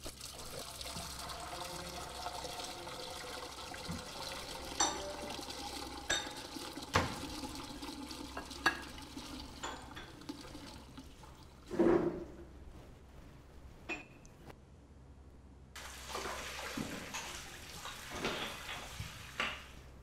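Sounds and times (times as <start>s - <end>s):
water running at sink: 0.0s - 12.4s, 15.8s - 20.0s
crockery clinking: 4.6s - 7.1s, 9.6s - 10.2s, 13.9s - 14.3s.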